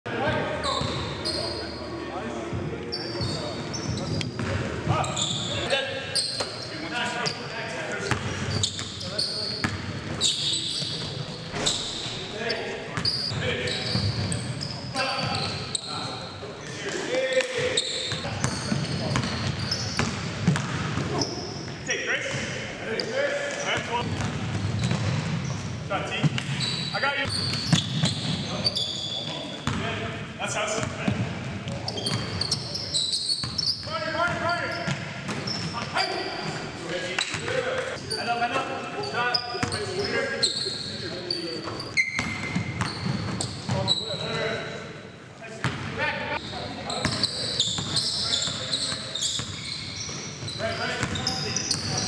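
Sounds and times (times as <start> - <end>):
sneakers squeaking on hardwood: 0.3 - 1.8, 2.9 - 7.5, 8.1 - 16.4, 17.3 - 29.8, 31.6 - 38.4, 39.0 - 44.4, 46.4 - 52.0
basketball bouncing: 18.4 - 21.1.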